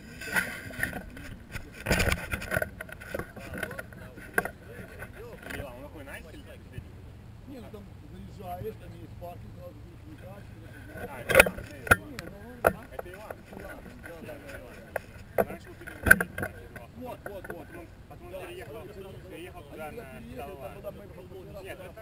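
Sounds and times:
people talking: 0.0s - 22.0s.

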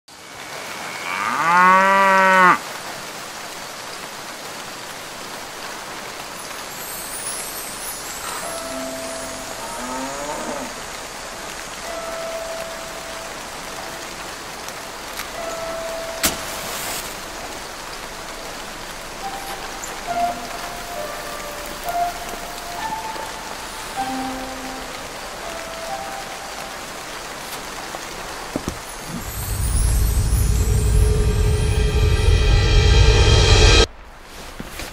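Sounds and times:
cow mooing: 0.9s - 2.6s
deep music: 15.3s - 26.9s, 29.1s - 33.9s.

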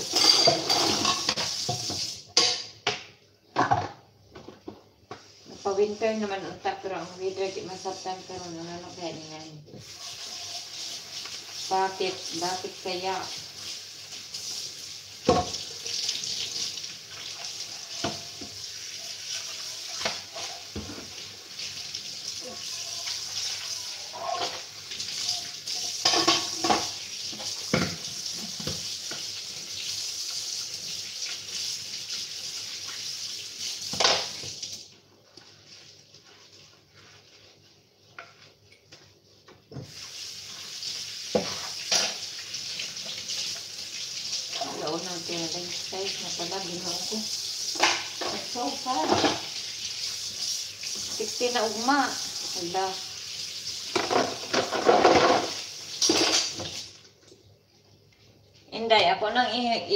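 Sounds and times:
crockery and utensils clinking: 0.0s - 1.4s
tap running into sink: 0.4s - 3.9s, 15.2s - 15.7s, 18.0s - 18.6s, 26.0s - 29.3s, 53.9s - 56.8s.

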